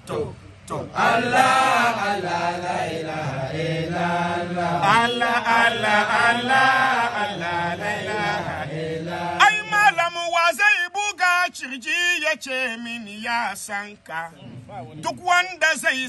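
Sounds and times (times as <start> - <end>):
men chanting: 0.0 - 16.0.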